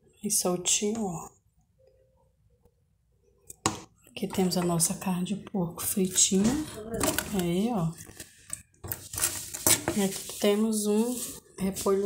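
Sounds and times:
dishes clicking and knocking: 3.5 - 4.8.

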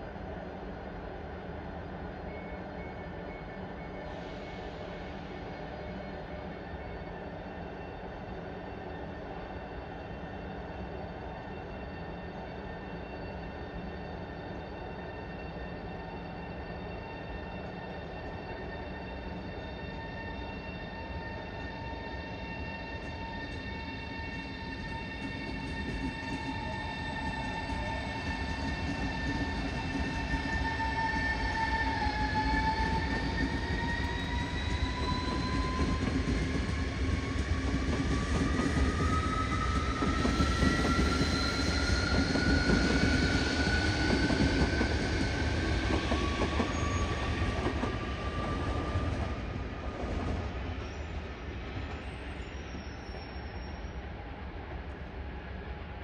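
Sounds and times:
electric train whine: 0.0 - 56.0
train rumble: 20.8 - 52.4.

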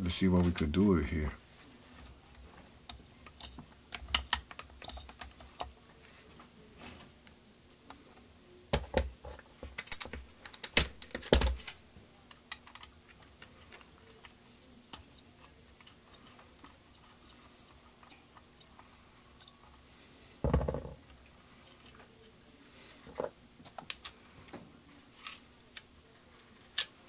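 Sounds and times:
metal parts clicking and knocking: 8.8 - 13.8.

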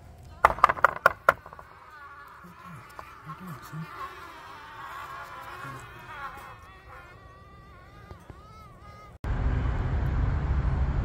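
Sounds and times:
bees buzzing in flight: 0.3 - 9.2.

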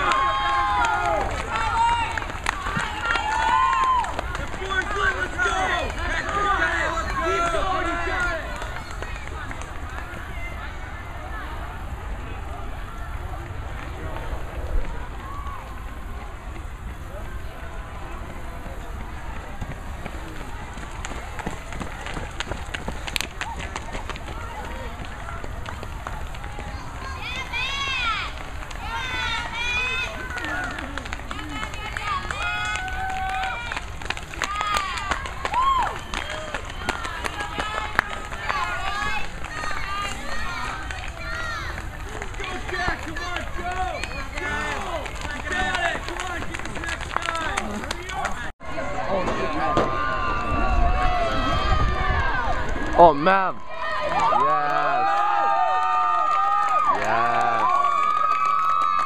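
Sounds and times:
spectators yelling and cheering: 0.0 - 59.0
wind rumble on microphone: 8.4 - 30.1, 49.4 - 53.0.

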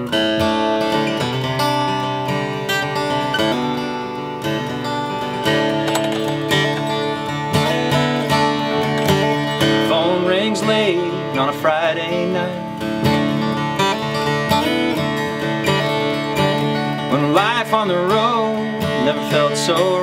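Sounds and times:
acoustic guitar strumming chords: 0.0 - 20.0
man singing: 9.6 - 12.8, 17.1 - 20.0.

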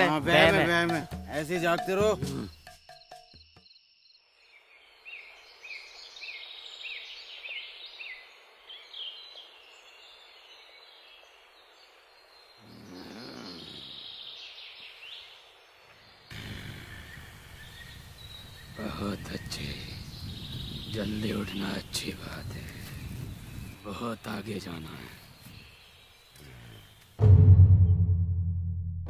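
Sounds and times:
birds chirping: 0.0 - 27.2
faint steady hiss: 4.2 - 27.2
loud steady hiss: 16.3 - 26.7.

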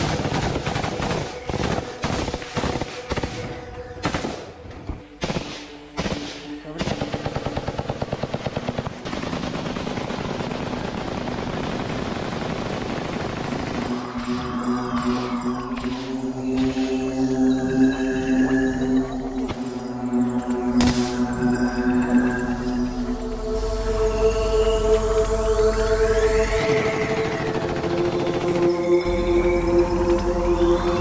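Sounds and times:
automatic rifle fire: 0.0 - 4.5, 5.2 - 15.2.

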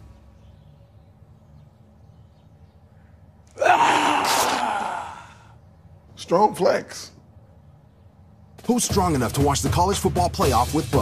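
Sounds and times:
man straining grunt: 3.6 - 5.5.

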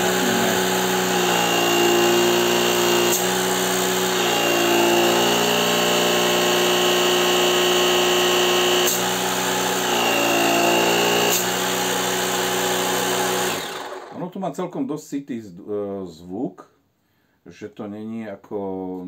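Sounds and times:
air compressor motor hum: 0.0 - 14.2.

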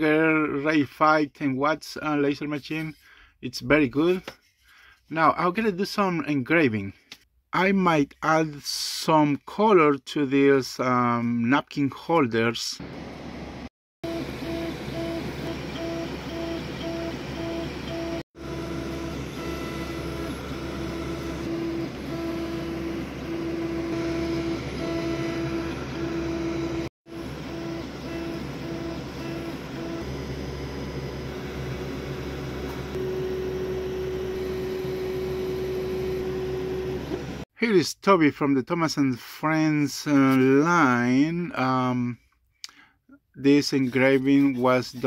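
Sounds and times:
stepper motors whining: 13.0 - 37.4
fan hum: 18.4 - 37.4.

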